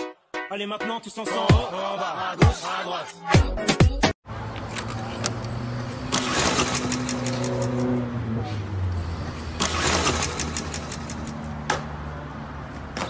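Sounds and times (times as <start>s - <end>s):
engine running: 4.4s - 11.8s.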